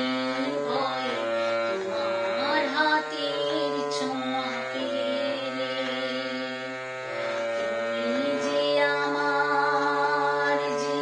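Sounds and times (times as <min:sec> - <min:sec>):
woman singing: 0:00.0 - 0:06.9, 0:07.7 - 0:11.0
instrumental backing: 0:00.0 - 0:11.0.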